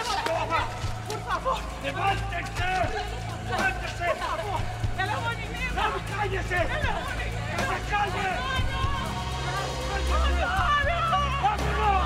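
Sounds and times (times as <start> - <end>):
dramatic music with low drone: 0.0 - 12.0.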